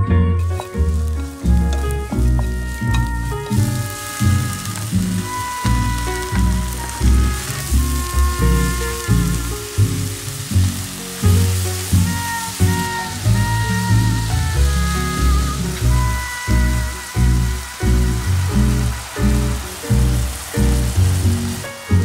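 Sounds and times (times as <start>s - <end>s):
food sizzling in a pan: 0.4s - 22.0s.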